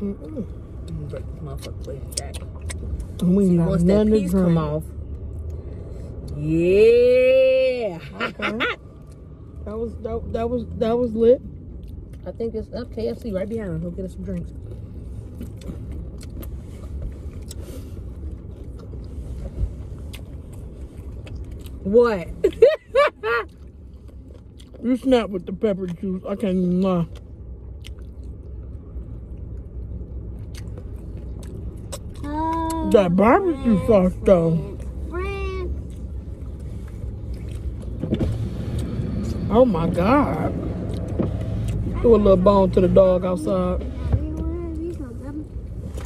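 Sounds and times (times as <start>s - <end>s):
car interior rumble: 0.0s - 46.0s.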